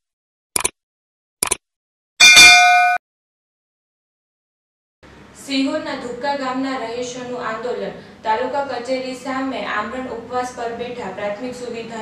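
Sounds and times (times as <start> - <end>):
bright metallic bell ding: 2.2 - 3.0.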